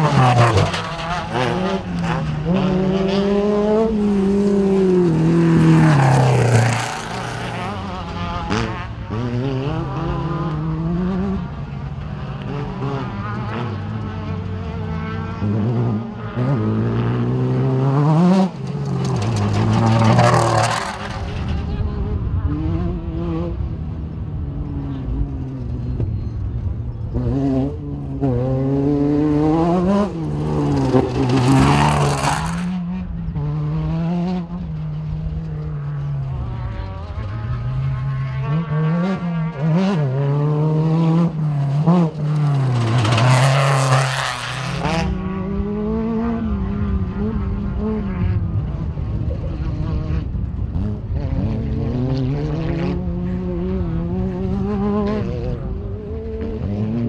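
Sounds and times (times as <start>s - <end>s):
race vehicle engines revving: 0.0s - 57.0s.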